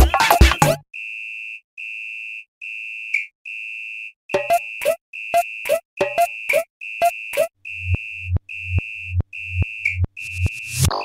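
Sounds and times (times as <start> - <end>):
high electronic beep: 4.4 - 11.0.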